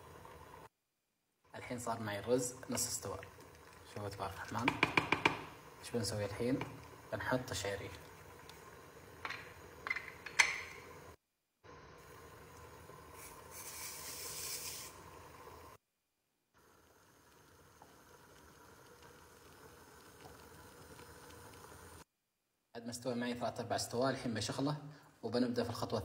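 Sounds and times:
pot bubbling: 0:01.5 - 0:15.8, 0:16.6 - 0:22.1
ladle knocking against pot: 0:04.6 - 0:05.6, 0:09.2 - 0:10.8
brief hiss: 0:13.2 - 0:15.0.

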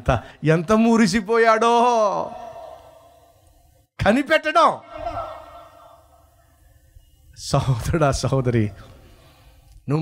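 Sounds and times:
man's drawn-out word echoing: 0:01.4 - 0:03.3, 0:04.0 - 0:06.1
faint hall ambience: 0:02.0 - 0:10.0.

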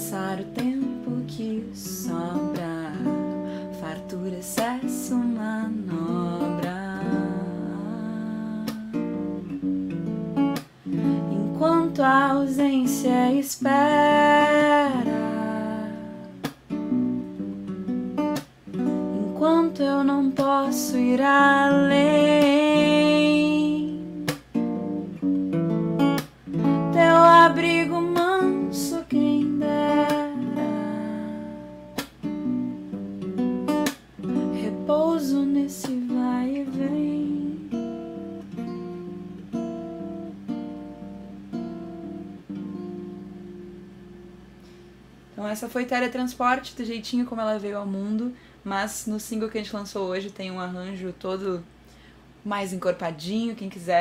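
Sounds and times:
woman singing: 0:00.0 - 0:09.4, 0:11.0 - 0:16.4, 0:19.0 - 0:24.4, 0:26.8 - 0:31.9, 0:34.4 - 0:38.0, 0:45.4 - 0:51.6, 0:52.5 - 0:54.0
strummed acoustic guitar: 0:00.0 - 0:45.1.

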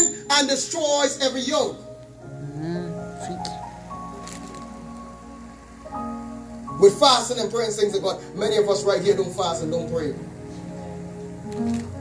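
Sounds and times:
soft keyboard chords: 0:00.0 - 0:12.0.

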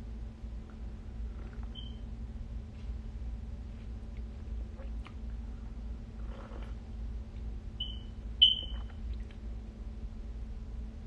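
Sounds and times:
steady low hum: 0:00.0 - 0:11.0
high-pitched electronic beeps: 0:07.8 - 0:08.9.

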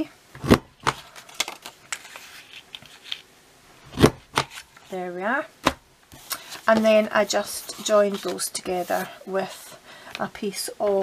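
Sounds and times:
paper rustling: 0:01.0 - 0:03.3, 0:06.1 - 0:09.1.

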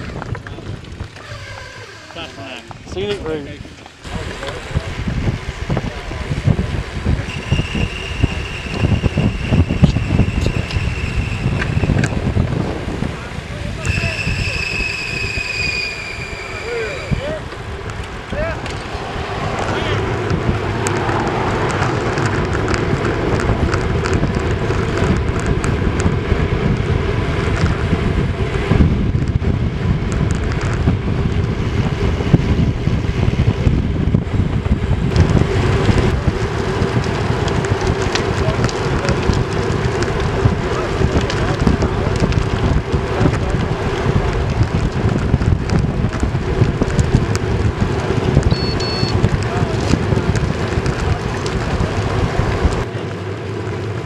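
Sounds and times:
bicycle tyre and road noise: 0:00.0 - 0:54.0
wind rush on microphone: 0:00.0 - 0:54.0.

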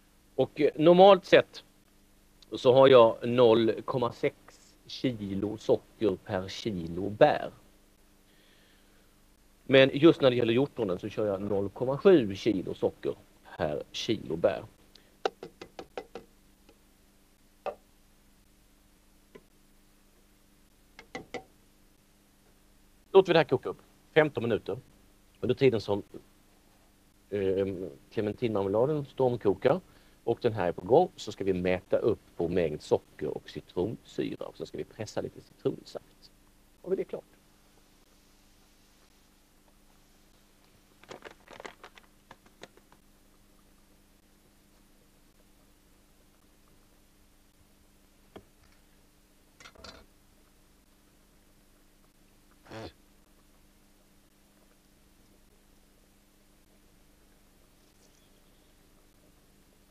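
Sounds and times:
paper bag crinkling: 0:41.0 - 0:42.9.

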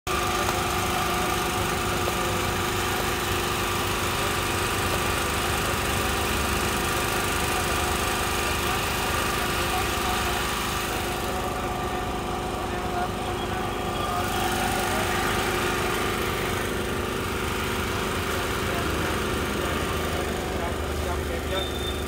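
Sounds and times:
drone propellers humming: 0:06.6 - 0:22.0.

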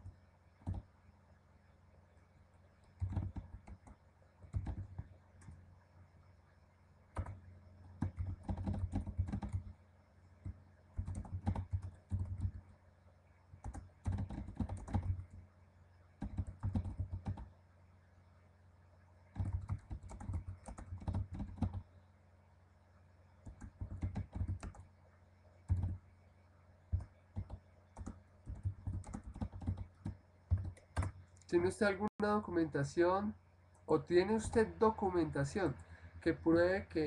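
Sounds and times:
typing on computer keyboard: 0:00.6 - 0:00.9, 0:02.8 - 0:05.6, 0:07.2 - 0:07.4, 0:08.0 - 0:09.7, 0:10.4 - 0:12.7, 0:13.6 - 0:15.4, 0:16.2 - 0:17.5, 0:19.3 - 0:21.9, 0:23.4 - 0:24.9, 0:25.7 - 0:26.0, 0:26.9 - 0:31.2.

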